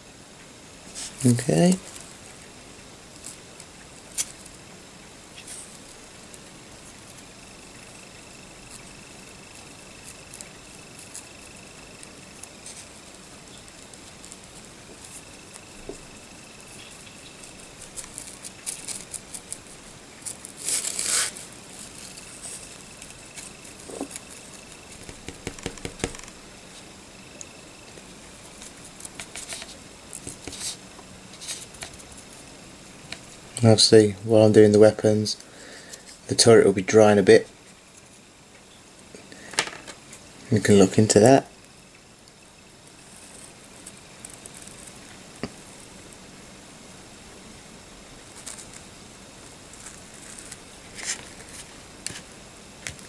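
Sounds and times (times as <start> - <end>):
scraping rustle: 0.9 - 2.1, 16.7 - 26.9, 28.5 - 32.4, 49.7 - 52.3.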